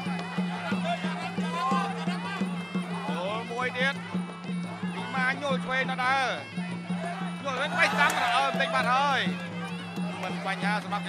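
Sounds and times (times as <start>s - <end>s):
reed oboe wailing: 0.0s - 10.8s
steady drumbeat: 0.0s - 11.0s.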